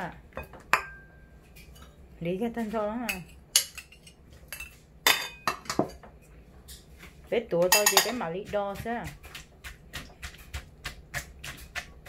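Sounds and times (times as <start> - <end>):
bowls clinking together: 7.7 - 8.2.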